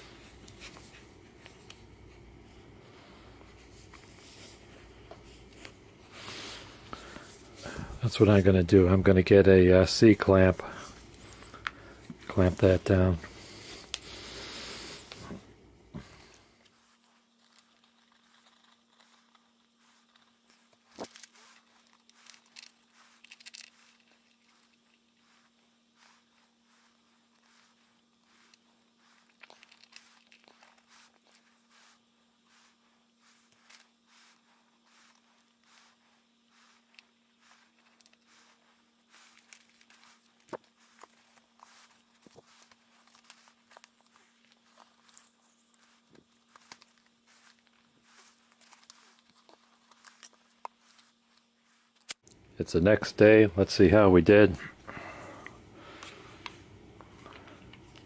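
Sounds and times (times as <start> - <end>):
steady low hum: 0.0 - 58.0
small clicks and light rustles: 16.3 - 26.2, 26.8 - 31.6.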